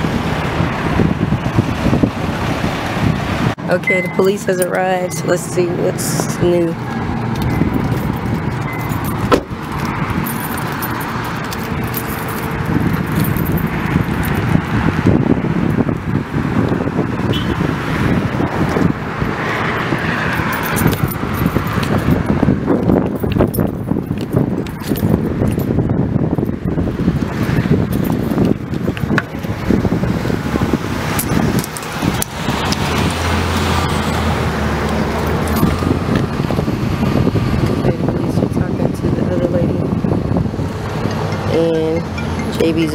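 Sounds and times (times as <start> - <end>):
road traffic noise: 0.0 - 42.9.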